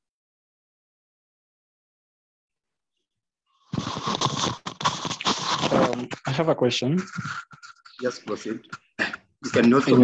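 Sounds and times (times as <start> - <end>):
rustling and knocking on microphone: 3.7 - 6.2.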